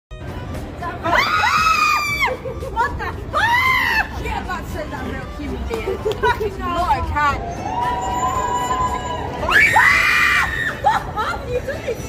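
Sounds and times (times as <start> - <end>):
woman screaming: 1.1 - 2.5, 3.3 - 4.2, 7.7 - 11.3
woman laughing: 2.1 - 3.6, 10.6 - 12.0.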